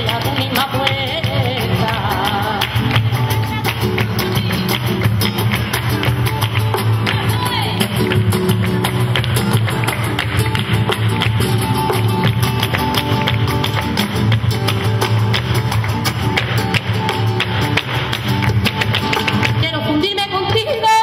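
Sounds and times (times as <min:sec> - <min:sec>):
rhythmic handclaps: 0:00.0 - 0:20.6
flamenco guitar: 0:00.0 - 0:21.0.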